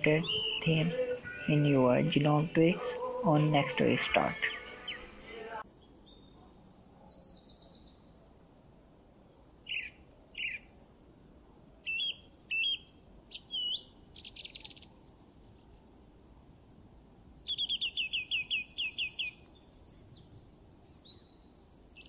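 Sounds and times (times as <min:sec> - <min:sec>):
bird chirps and whistles: 0:11.9 - 0:14.8, 0:17.5 - 0:19.8.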